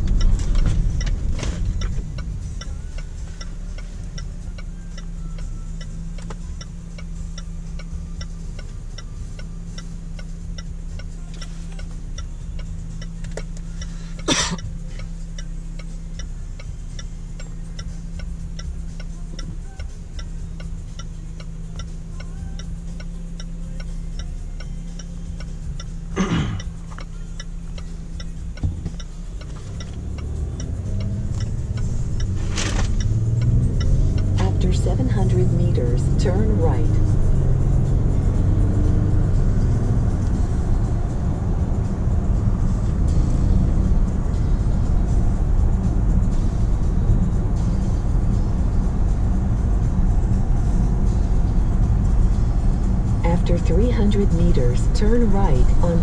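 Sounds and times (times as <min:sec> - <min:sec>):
passing traffic whooshes: 0:00.0 - 0:05.1, 0:22.8 - 0:56.0
car engine idling: 0:00.0 - 0:56.0
turn signal ticking: 0:00.0 - 0:56.0.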